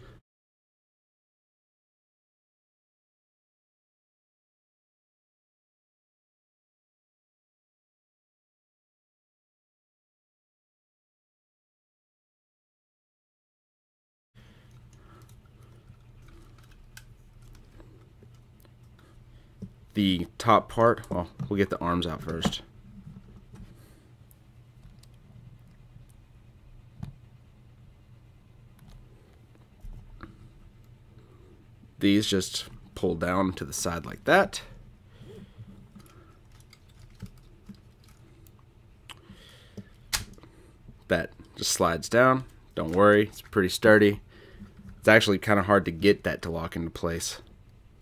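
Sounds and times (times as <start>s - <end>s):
steady low hum: 14.4s - 48.0s
plastic toy parts clicking and rattling: 14.7s - 18.4s, 35.9s - 38.2s.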